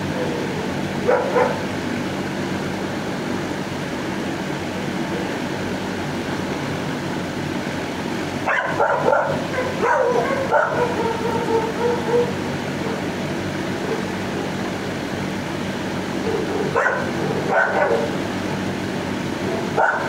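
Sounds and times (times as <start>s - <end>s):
steady low hum: 0.0s - 20.0s
dog barking and yelping: 0.2s - 1.6s, 8.5s - 13.1s, 16.2s - 18.2s, 19.6s - 20.0s.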